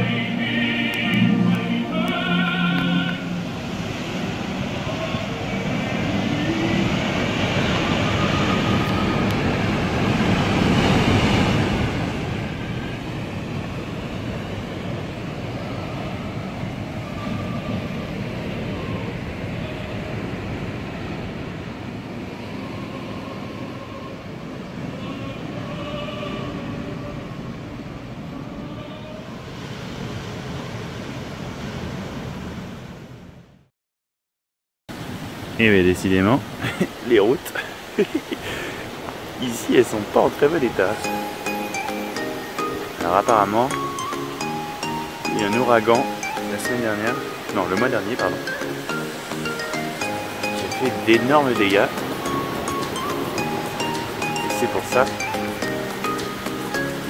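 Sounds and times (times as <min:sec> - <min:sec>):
surf breaking on rocky shore: 0:01.8 - 0:23.8, 0:35.0 - 0:57.0.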